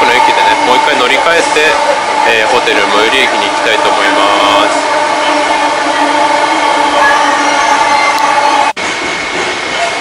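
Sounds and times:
train running noise: 0.0 - 10.0.

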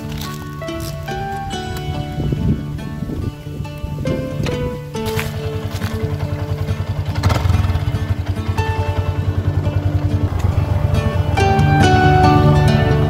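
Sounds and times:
motorcycle engine pulling away: 0.0 - 13.0
plucked melodic music: 0.0 - 13.0.

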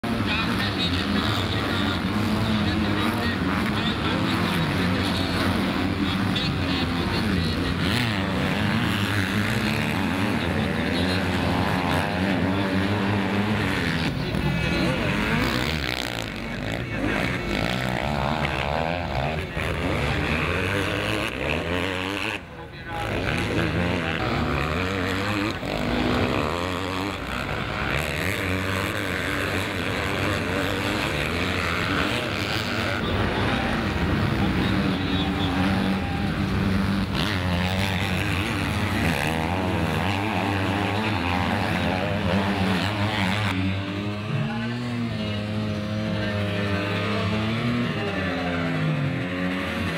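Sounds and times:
motocross bike engines revving: 0.0 - 49.9.

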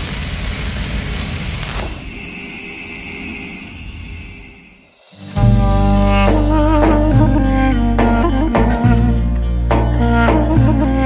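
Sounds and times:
hiss: 0.0 - 6.2
falling whoosh: 0.7 - 6.7
thin high tone: 2.0 - 8.0.

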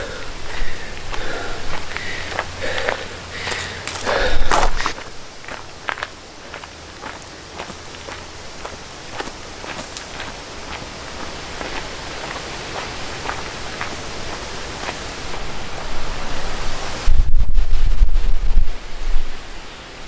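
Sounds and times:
footsteps on gravel: 0.0 - 16.4
steady outdoor hiss: 0.0 - 20.0.

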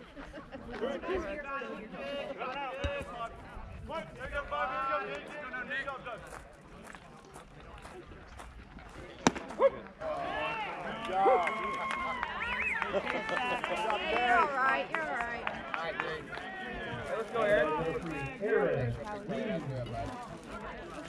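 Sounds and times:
baseball bat cracking ball: 9.2 - 9.6
crowd shouting and cheering: 9.6 - 19.7
scattered voices: 12.9 - 21.0.

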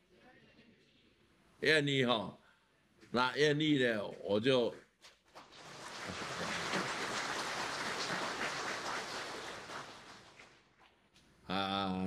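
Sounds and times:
audience applauding: 5.4 - 10.6.

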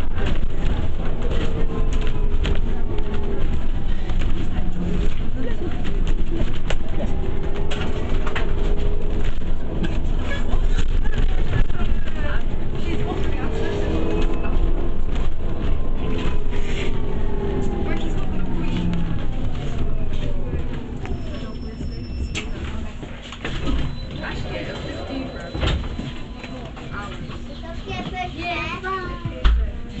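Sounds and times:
bus body rattling: 0.0 - 30.0
bus engine and road rumble: 0.0 - 30.0
passengers' voices: 0.0 - 30.0.

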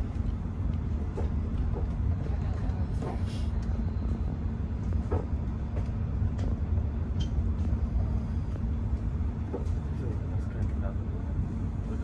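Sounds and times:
train rumble inside carriage: 0.0 - 12.0.

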